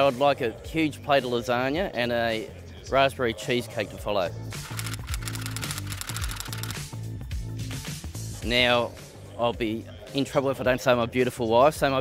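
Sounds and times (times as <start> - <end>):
typewriter key clicks: 4.7 - 6.8.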